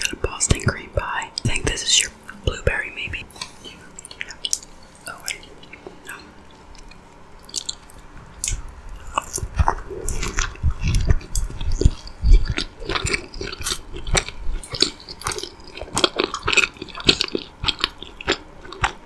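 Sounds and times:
chewing donut: 0:03.4 - 0:19.0
low chewing thuds: 0:06.6 - 0:19.0.

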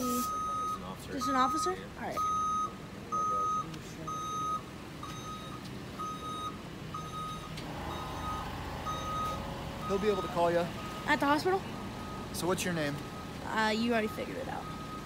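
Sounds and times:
reversing alarm beeping: 0:00.0 - 0:15.0.

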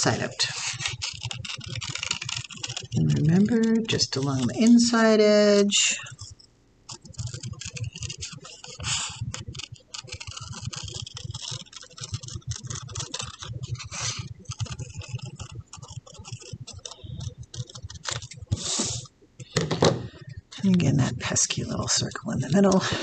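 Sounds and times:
scissors snipping paper: 0:00.0 - 0:05.0, 0:06.9 - 0:19.1.

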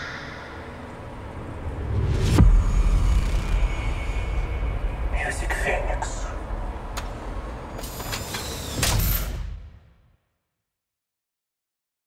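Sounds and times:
trolleybus low rumble: 0:00.0 - 0:07.8.

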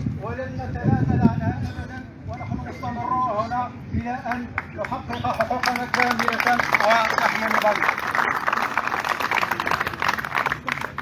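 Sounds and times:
crowd applauding: 0:04.6 - 0:11.0.

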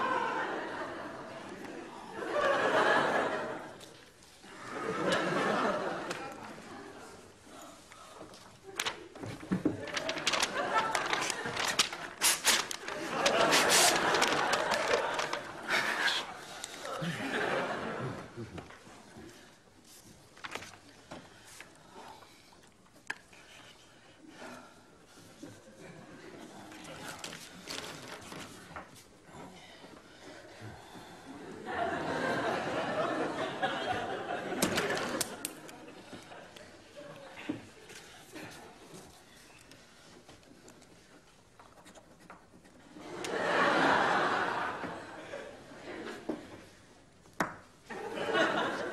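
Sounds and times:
studio audience laughter: 0:00.0 - 0:03.9, 0:04.5 - 0:07.2, 0:12.9 - 0:16.4, 0:17.0 - 0:18.5, 0:31.4 - 0:36.5, 0:43.0 - 0:46.4, 0:47.9 - 0:48.9
paper crumpling: 0:08.7 - 0:16.8, 0:19.9 - 0:21.7, 0:26.7 - 0:29.1.

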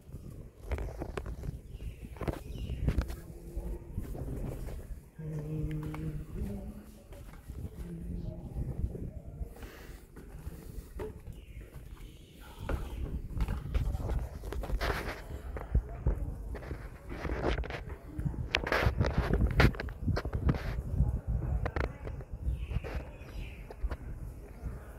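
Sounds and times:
wind buffeting microphone: 0:00.0 - 0:11.7, 0:12.4 - 0:24.9.

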